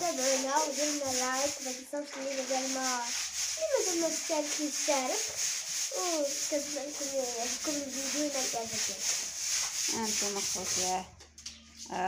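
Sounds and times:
girl talking: 0:00.0 - 0:05.3, 0:05.9 - 0:09.1.

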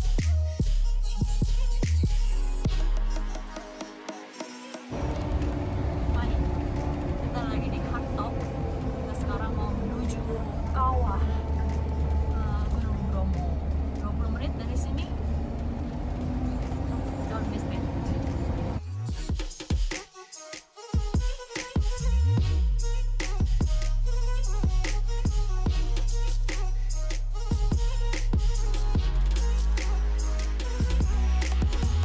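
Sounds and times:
engine and road drone: 0:04.9 - 0:18.9, 0:24.0 - 0:32.0
people talking: 0:05.0 - 0:18.8.

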